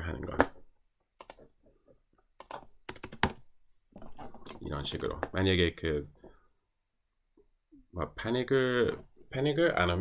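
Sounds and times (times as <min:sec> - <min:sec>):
computer keyboard and mouse clicks: 0:01.2 - 0:01.5, 0:02.4 - 0:03.5.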